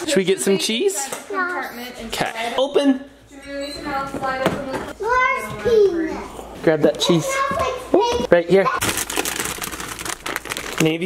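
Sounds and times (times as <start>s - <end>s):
plastic bag crinkling: 8.8s - 11.0s.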